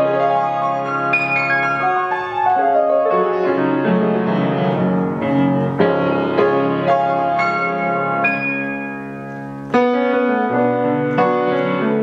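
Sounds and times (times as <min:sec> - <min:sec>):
piano chords and melody: 0:00.0 - 0:12.0.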